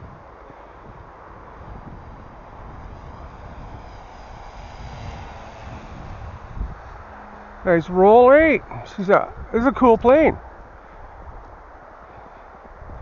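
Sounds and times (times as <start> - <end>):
wind rumble on microphone: 0.0 - 13.0.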